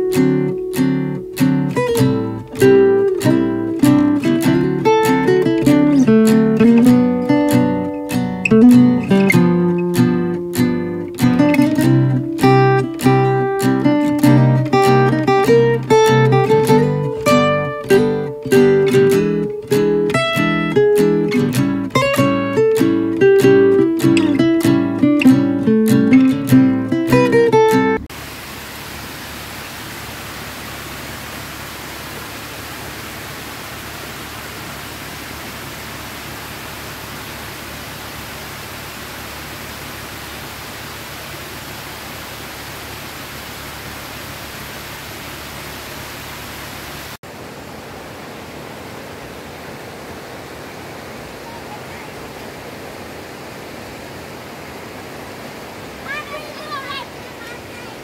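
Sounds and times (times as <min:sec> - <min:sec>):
small waterfall rushing: 0:00.0 - 0:25.0, 0:27.3 - 0:58.0.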